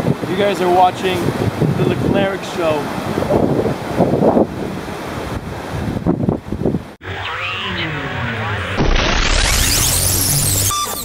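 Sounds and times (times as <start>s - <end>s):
surf: 0.0s - 6.1s, 7.0s - 11.0s
wind gusting on microphone: 0.0s - 7.0s
logo sweeping tones: 7.0s - 11.0s.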